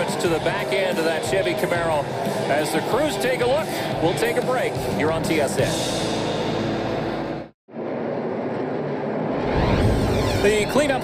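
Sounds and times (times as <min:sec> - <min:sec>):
music: 0:00.0 - 0:07.6.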